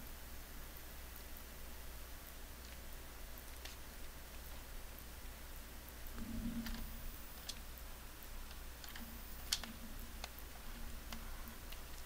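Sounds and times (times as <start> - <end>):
low electrical hum: 0.0 - 12.0
computer keyboard clicks: 8.5 - 12.0.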